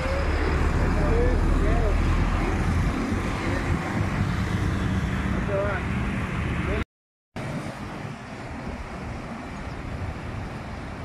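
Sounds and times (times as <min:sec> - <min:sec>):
roadside traffic rumble: 0:00.0 - 0:06.8, 0:07.4 - 0:11.0.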